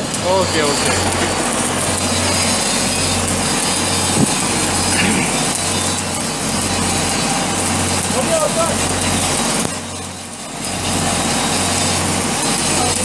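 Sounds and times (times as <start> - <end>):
arc welding crackling: 0.0 - 13.0
low hum: 0.1 - 7.2.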